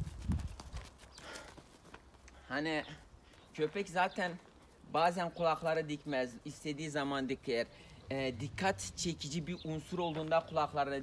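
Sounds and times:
footsteps on grass and dirt: 0.0s - 2.4s, 3.0s - 6.3s, 9.7s - 11.0s
faint outdoor background: 0.0s - 11.0s.

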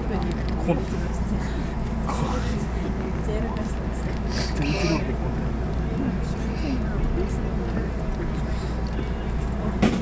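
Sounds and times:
faint murmur of voices: 0.0s - 10.0s
train interior hum: 0.0s - 10.0s.

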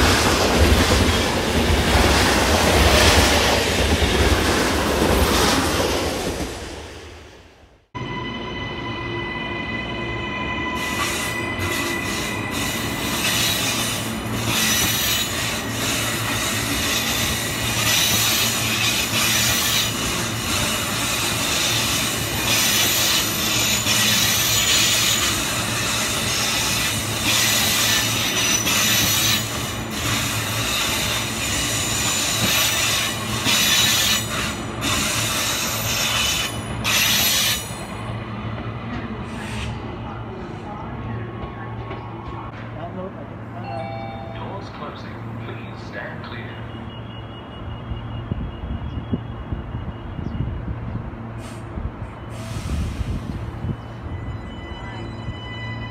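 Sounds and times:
electric train passing: 0.0s - 55.9s
train wheels squealing on rails: 8.0s - 42.4s, 43.6s - 55.9s.

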